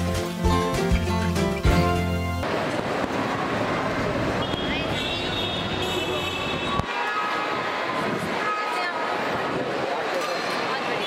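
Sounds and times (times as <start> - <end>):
crowd and hall noise: 0.0 - 11.0.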